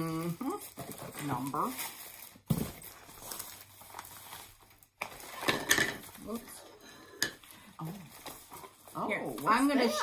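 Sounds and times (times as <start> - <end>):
paper packaging rustling: 0.0 - 6.5, 7.8 - 10.0.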